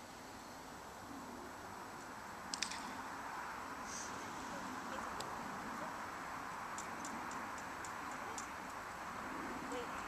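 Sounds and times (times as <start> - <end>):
steady background hiss: 0.0 - 10.0
light high-pitched ticks: 6.7 - 8.8.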